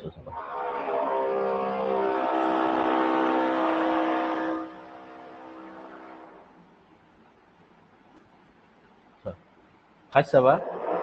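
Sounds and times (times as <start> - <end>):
vehicle engine passing: 0.3 - 6.6, 10.6 - 11.0.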